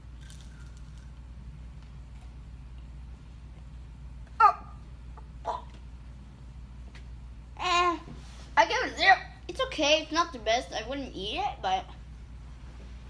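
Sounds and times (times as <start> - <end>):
low room hum: 0.0 - 13.0.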